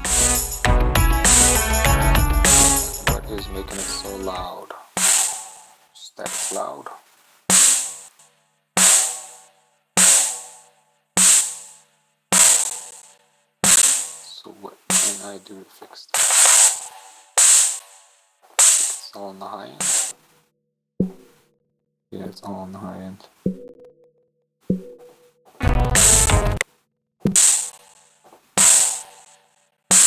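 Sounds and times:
sampled drum hit: 0.0s - 4.4s, 25.6s - 26.6s.

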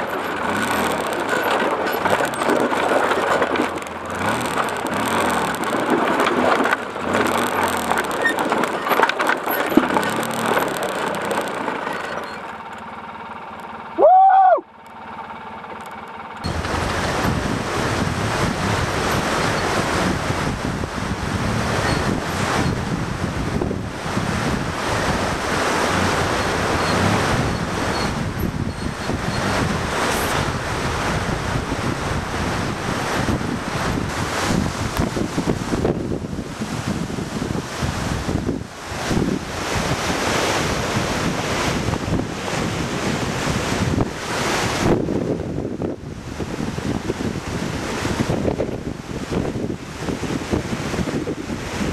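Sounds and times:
atv riding on rocky trail: 0.0s - 14.0s, 14.7s - 51.9s
wind buffeting microphone: 16.4s - 51.9s.

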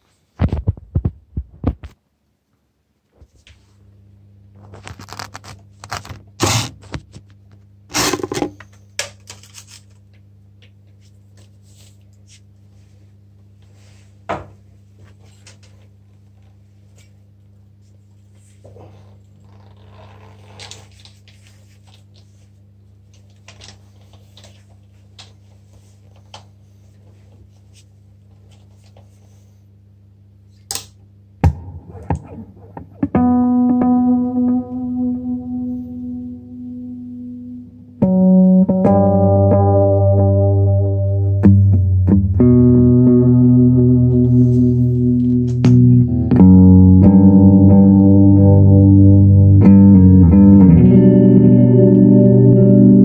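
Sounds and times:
low electrical hum: 0.0s - 53.0s
guitar handling clicks and taps: 30.7s - 35.4s, 38.0s - 40.5s, 41.4s - 48.8s.

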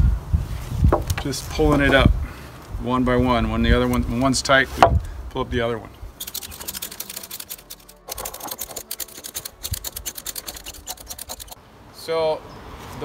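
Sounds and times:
ratchet strap pawl clicking: 6.2s - 11.6s.

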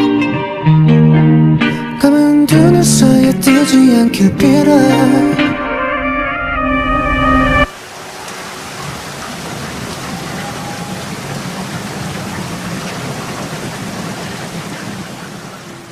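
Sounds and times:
pop song music: 0.0s - 7.7s
rain falling: 7.7s - 15.9s.

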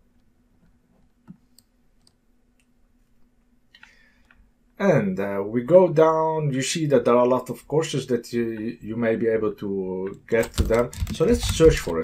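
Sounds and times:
faint steady hum: 0.0s - 12.0s
man's voice: 4.8s - 12.0s.

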